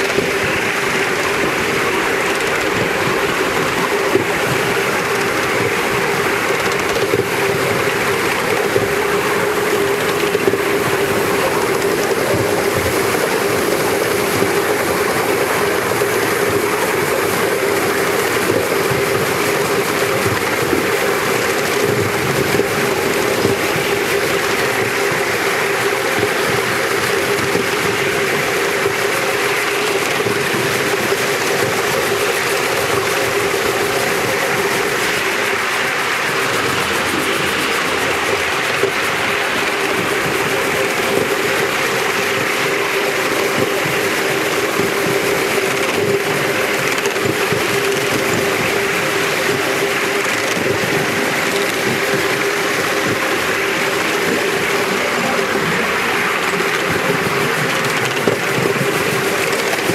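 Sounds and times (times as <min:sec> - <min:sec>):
miniature train rolling on track: 0:00.0 - 0:59.9
steady hum: 0:07.2 - 0:59.9.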